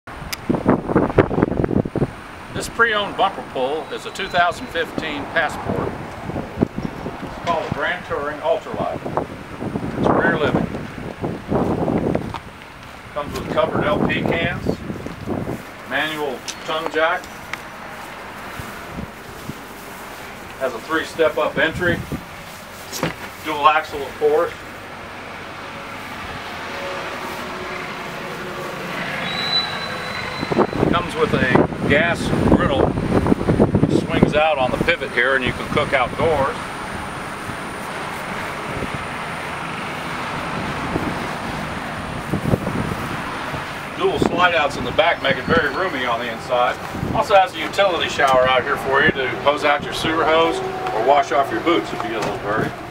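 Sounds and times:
wind on microphone: 0.1 - 2.7, 5.0 - 15.9, 18.5 - 20.5, 21.3 - 23.2, 29.9 - 52.9
outdoor rushing noise: 0.1 - 52.9.

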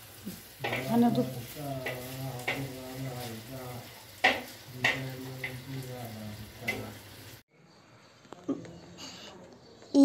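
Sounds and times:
meat sizzling in fat: 0.0 - 7.4.

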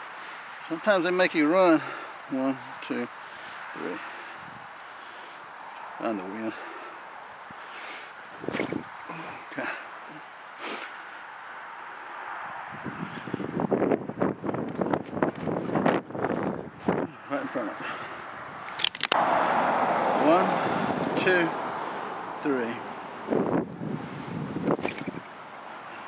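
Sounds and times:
wind buffeting microphone: 4.4 - 4.8, 8.3 - 9.4, 12.4 - 18.7, 20.0 - 25.4.

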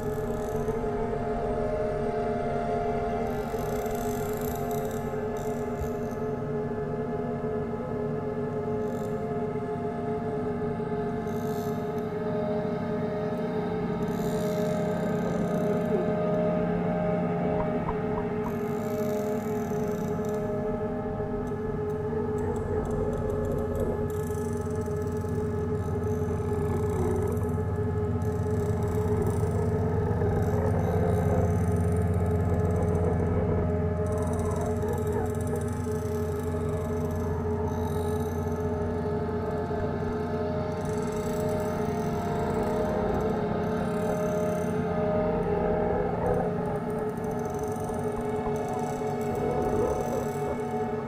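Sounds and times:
ambient drone music: 0.0 - 51.0.

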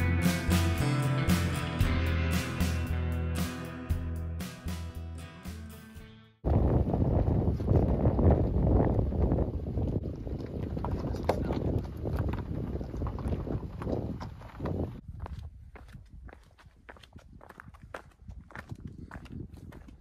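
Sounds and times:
low microphone rumble: 6.4 - 15.2
footsteps crunching on gravel: 10.3 - 20.0.

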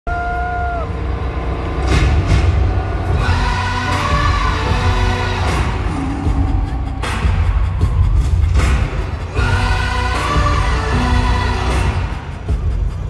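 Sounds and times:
crowd cheering: 0.0 - 1.2, 3.2 - 10.6
concert music with heavy bass: 0.1 - 13.0.

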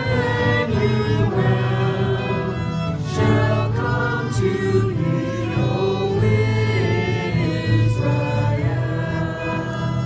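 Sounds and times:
acoustic guitar: 0.0 - 10.0
violin: 0.0 - 10.0
voices singing together: 0.0 - 10.0.

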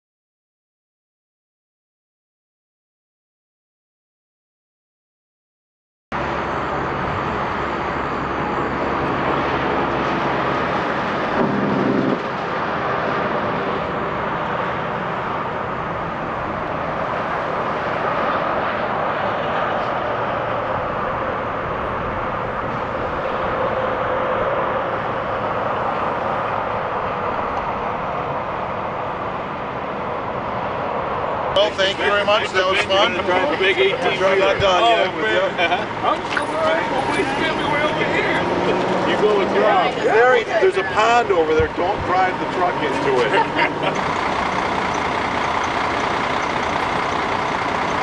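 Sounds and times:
car engine and tyre noise: 6.1 - 48.0
low engine hum: 6.2 - 48.0.

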